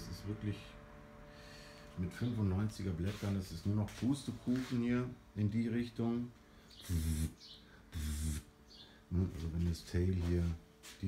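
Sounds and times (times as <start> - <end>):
man speaking: 0.0 - 0.8, 1.9 - 7.4, 9.1 - 11.0.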